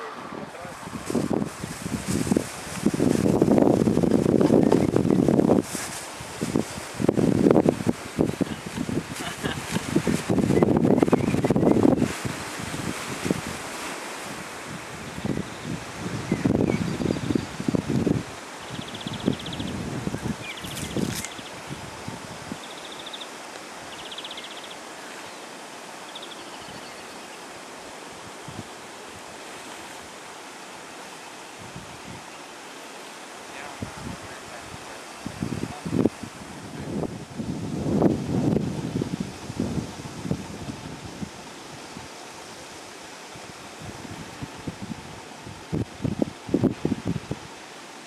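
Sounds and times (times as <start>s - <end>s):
wind buffeting microphone: 0.0s - 22.8s, 31.5s - 32.3s, 33.6s - 42.7s, 43.3s - 47.6s
outdoor breeze: 0.0s - 48.0s.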